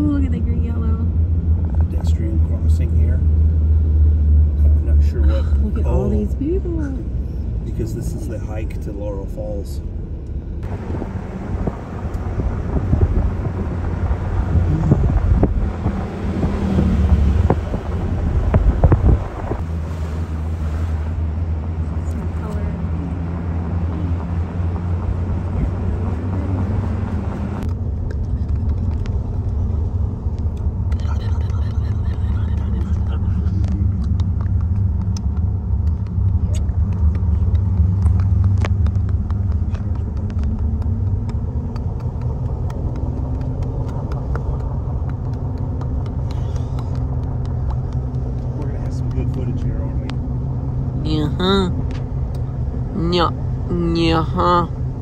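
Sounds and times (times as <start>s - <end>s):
engine and tyre rumble: 0.0s - 55.0s
wind rushing: 10.6s - 21.2s.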